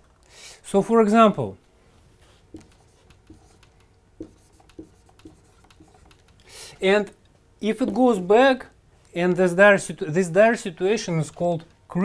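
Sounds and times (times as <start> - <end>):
marker writing on whiteboard: 2.5 - 6.4.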